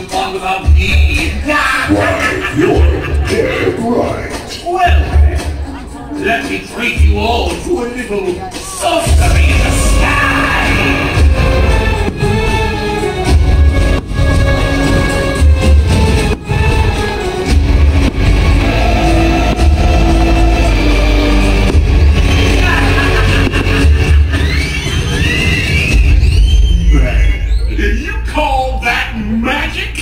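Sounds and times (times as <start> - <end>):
music over outdoor speakers: 0.0 - 28.2
fireworks booming and banging: 9.1 - 26.6
whistling fireworks: 15.9 - 28.0.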